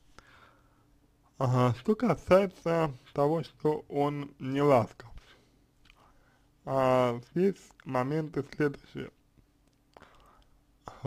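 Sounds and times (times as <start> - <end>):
soft intake of breath: 0.0 - 1.0, 5.2 - 6.6
faint room hum: 0.0 - 11.0.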